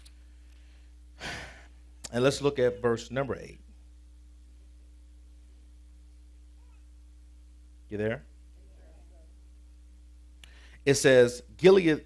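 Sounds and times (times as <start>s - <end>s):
steady low hum: 0.0s - 12.0s
man sighing: 1.2s - 1.7s.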